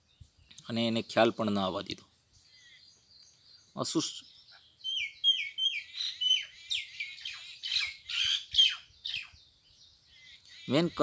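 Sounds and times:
bird chirping and squawking: 2.4s - 11.0s.

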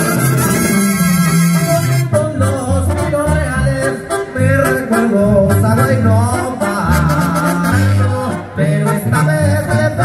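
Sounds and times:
banda music playing: 0.0s - 10.0s.

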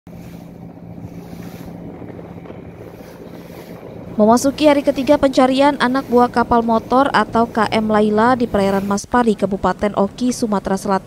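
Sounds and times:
boat engine humming: 0.0s - 11.0s
wind buffeting microphone: 0.1s - 10.8s
water rushing along hull: 0.1s - 11.0s.

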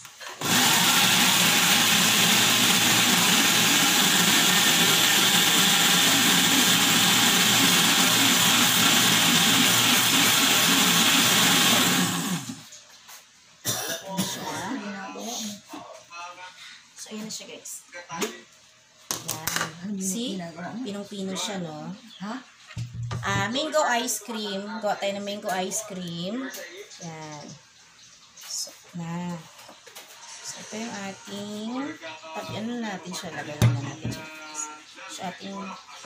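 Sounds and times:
blender running: 0.2s - 12.6s.

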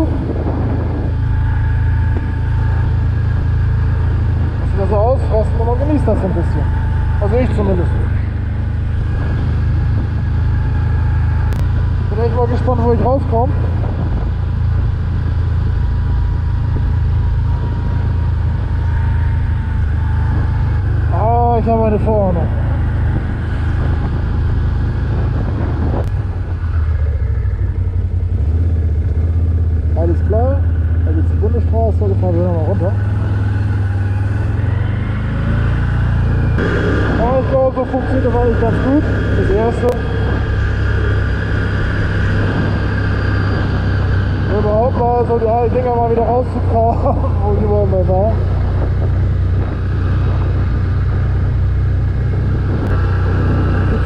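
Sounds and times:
atv engine droning: 0.0s - 54.0s
tyres rumbling on paving: 0.0s - 54.0s.

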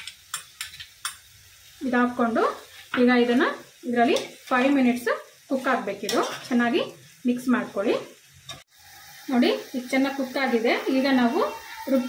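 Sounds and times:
metal spoon tapping pan: 0.0s - 1.3s
chicken sizzling in a pan: 0.0s - 12.0s.

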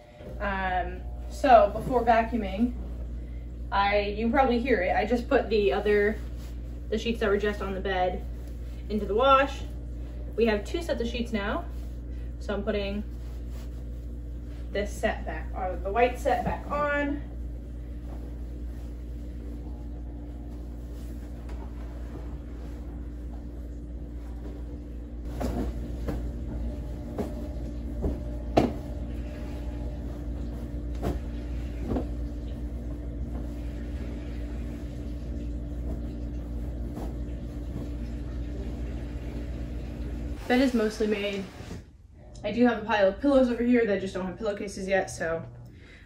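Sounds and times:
washing machine humming: 0.0s - 46.0s
bedding rustling and knocking: 20.4s - 33.8s, 35.7s - 38.1s.

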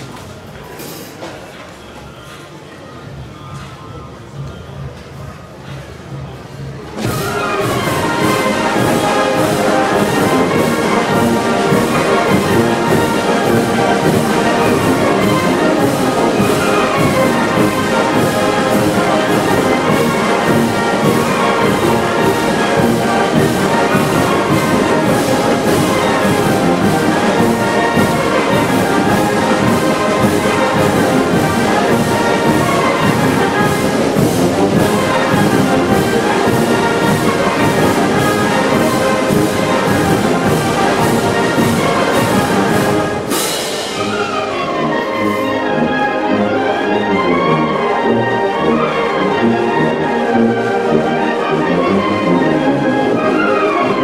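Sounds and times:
wind band playing dance music: 6.4s - 54.0s.

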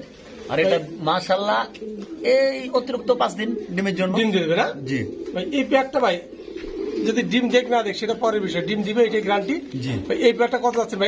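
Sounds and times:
pigeons cooing: 0.0s - 11.0s
man talking: 0.4s - 6.3s, 7.0s - 11.0s.

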